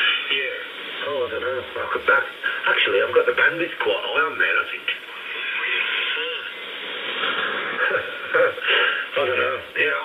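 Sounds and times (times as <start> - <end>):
radio band noise and hiss: 0.0 - 10.0.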